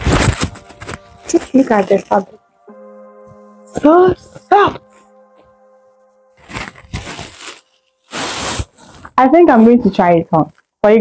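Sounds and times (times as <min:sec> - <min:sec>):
knit fabric rustling: 0:00.0 - 0:02.4, 0:06.4 - 0:10.7
soft background music: 0:00.0 - 0:11.0.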